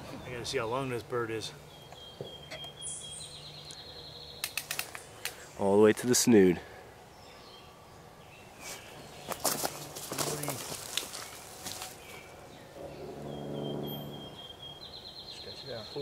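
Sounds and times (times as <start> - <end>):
rustling in leaf litter: 8.6 - 12.3.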